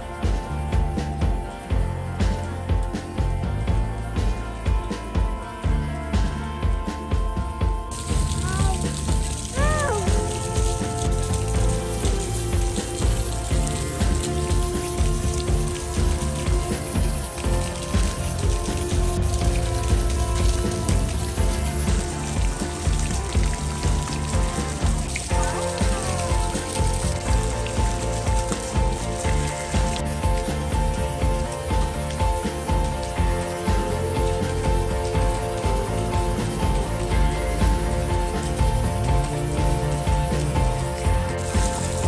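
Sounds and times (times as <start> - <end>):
background music: 0.0 - 42.0
fountain water splashing: 0.0 - 42.0.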